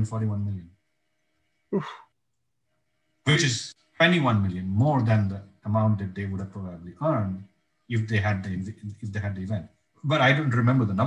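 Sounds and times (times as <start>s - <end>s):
man exclaiming oof: 1.8s - 2.0s.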